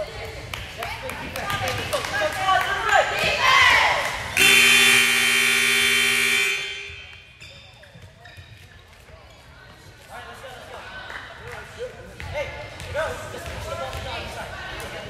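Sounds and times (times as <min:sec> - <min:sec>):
scoreboard buzzer tone: 0:04.4 - 0:07.2.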